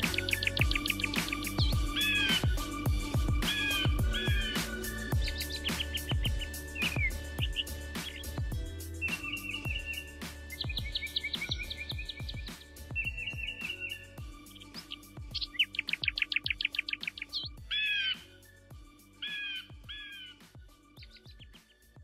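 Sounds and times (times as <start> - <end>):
background music with beat: 0.0 - 22.0
bird chirps and trills: 0.0 - 22.0.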